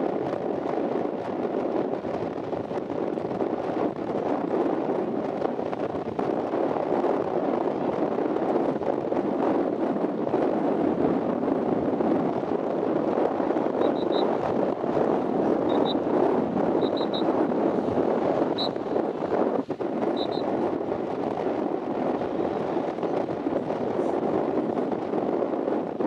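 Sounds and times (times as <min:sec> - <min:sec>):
wind on microphone: 0:00.0 - 0:26.0.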